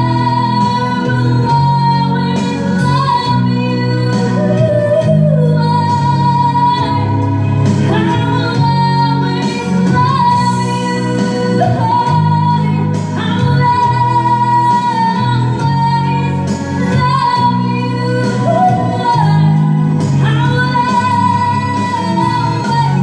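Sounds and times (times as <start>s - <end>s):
instrumental backing music: 0.0s - 23.0s
woman singing into microphone: 0.0s - 23.0s.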